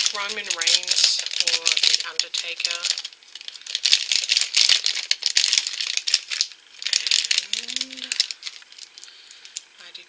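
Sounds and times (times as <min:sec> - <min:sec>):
plastic pieces rattling: 0:00.0 - 0:09.6
foil bag crinkling: 0:00.0 - 0:09.8.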